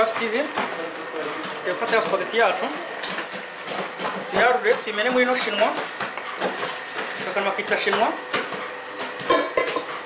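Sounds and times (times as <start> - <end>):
wooden spoon knocking metal: 9.1 - 9.9
metal colander and pots clattering: 9.1 - 10.0.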